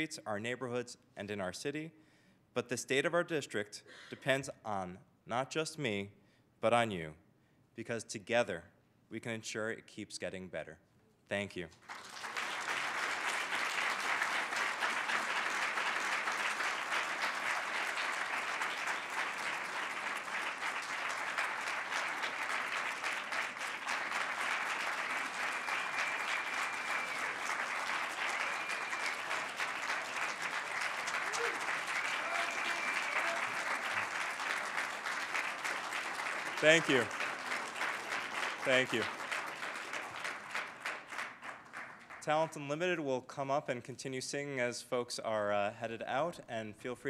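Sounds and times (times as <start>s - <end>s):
audience applauding: 11.8s - 42.4s.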